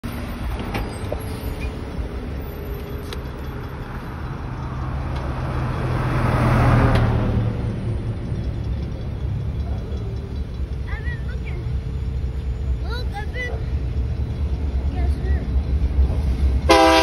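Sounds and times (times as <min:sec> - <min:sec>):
cars driving past: 0:00.0 - 0:17.0.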